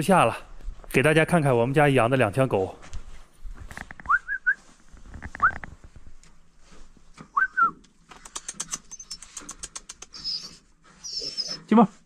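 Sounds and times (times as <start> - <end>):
person whistling rising whistles: 4.1 - 4.6, 7.3 - 7.8.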